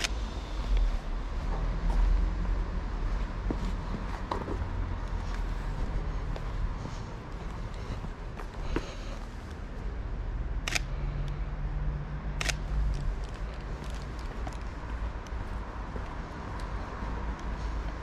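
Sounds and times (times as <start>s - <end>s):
low street rumble: 0.0s - 18.0s
camera shutter click: 10.7s - 10.9s, 12.4s - 12.7s.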